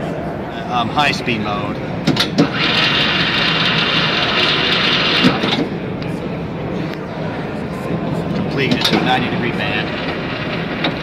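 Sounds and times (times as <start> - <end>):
pipe bender motor whirring: 2.4 - 5.7.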